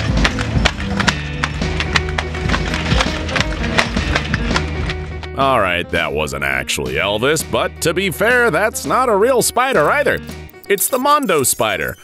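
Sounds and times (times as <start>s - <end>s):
background music with bass line: 0.0s - 12.0s
walking robot clattering: 9.8s - 12.0s.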